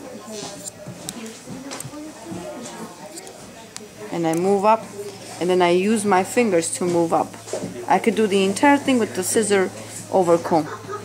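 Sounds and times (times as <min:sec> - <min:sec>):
quiet voices murmuring: 0:00.0 - 0:11.0.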